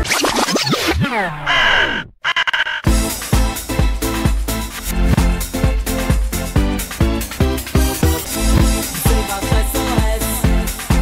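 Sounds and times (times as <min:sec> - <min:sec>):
disco house beat: 0:02.9 - 0:11.0.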